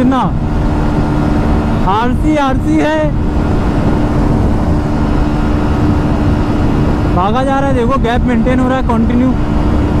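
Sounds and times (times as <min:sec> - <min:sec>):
wind rush on microphone: 0:00.0 - 0:10.0.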